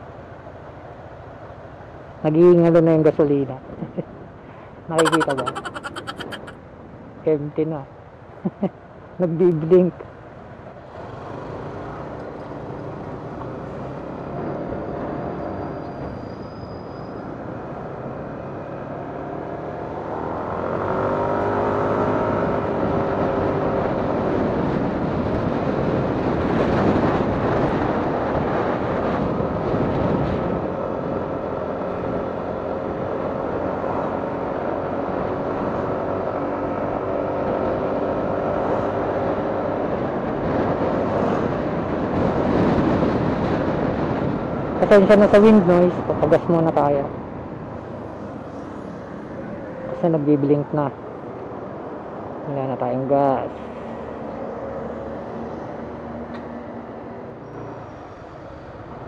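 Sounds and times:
wind noise on microphone: 0:22.8 - 0:32.2, 0:38.6 - 0:47.7.

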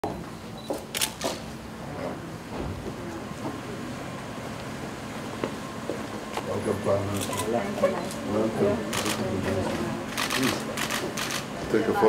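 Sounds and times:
camera shutters clicking: 0:00.9 - 0:01.4, 0:08.9 - 0:09.2, 0:10.1 - 0:11.5.

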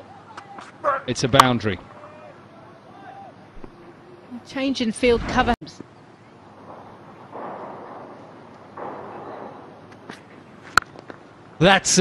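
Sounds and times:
faint ground noise: 0:05.1 - 0:12.0.

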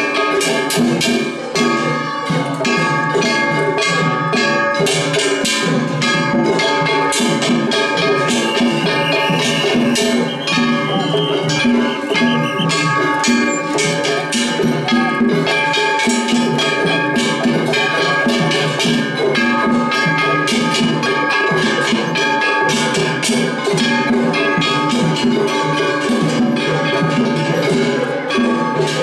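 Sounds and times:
driving drum rhythm: 0:00.0 - 0:29.0
hand gongs struck rapidly: 0:00.0 - 0:29.0.

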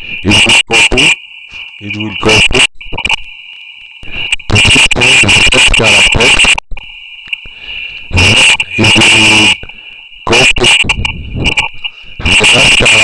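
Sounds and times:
man speaking distorted: 0:00.0 - 0:03.1, 0:04.0 - 0:06.6, 0:08.1 - 0:13.0
high-pitched electrical whine: 0:00.0 - 0:13.0.

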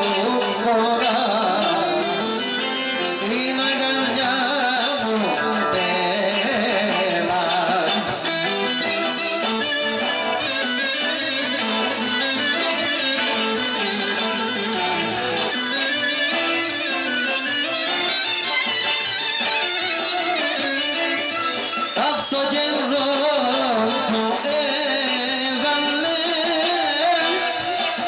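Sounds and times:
electric guitar melody: 0:00.0 - 0:28.0
live dance band music: 0:00.0 - 0:28.0.

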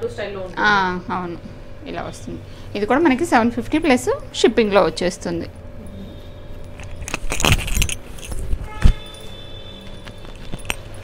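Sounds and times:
bangles jingling: 0:06.7 - 0:11.0.

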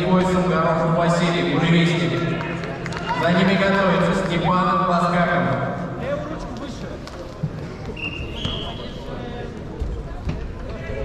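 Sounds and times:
distant voices in sports hall: 0:00.0 - 0:11.0.

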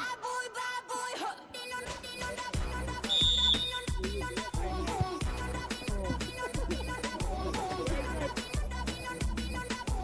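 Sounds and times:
background music with bass: 0:01.9 - 0:10.0.

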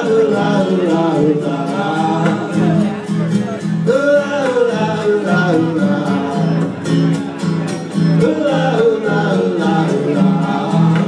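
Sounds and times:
person singing: 0:00.0 - 0:07.4, 0:08.1 - 0:11.0
acoustic guitars: 0:00.0 - 0:11.0
upright bass pulsing: 0:00.0 - 0:11.0.

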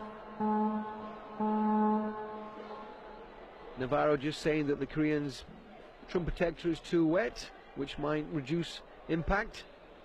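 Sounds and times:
buzzer-like electronic tone: 0:00.4 - 0:02.9.

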